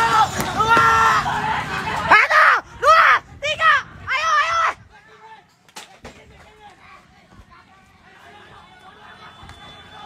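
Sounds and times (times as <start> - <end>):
distant shouting voices: 0.0 - 10.0.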